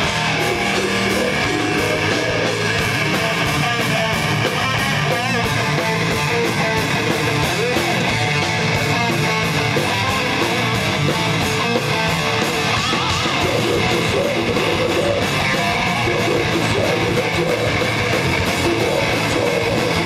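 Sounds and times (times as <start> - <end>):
live heavy metal band: 0.0 - 20.0.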